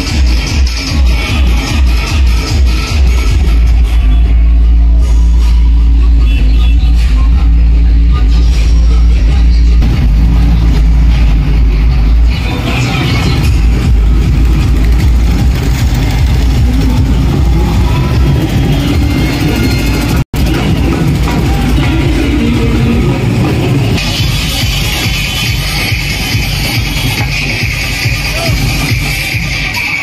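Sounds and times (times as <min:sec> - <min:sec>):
vehicle engines running: 0:00.0 - 0:29.7
bass-heavy music from loudspeakers: 0:00.0 - 0:30.0.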